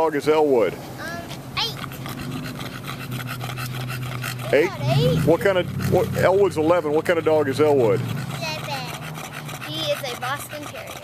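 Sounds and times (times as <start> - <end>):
dogs panting rapidly: 0.0 - 11.0.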